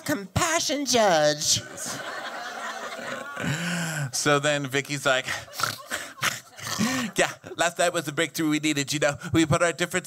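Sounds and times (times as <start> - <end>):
audience laughing: 1.6 - 4.4, 5.0 - 7.6.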